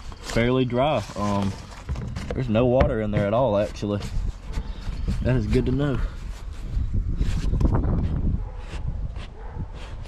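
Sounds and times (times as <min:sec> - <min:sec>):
wind rumbling on microphone: 0:01.2 - 0:10.0.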